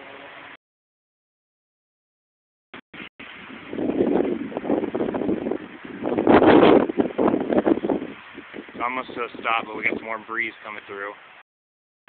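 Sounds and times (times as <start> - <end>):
wind gusting on microphone: 3.0 - 11.0.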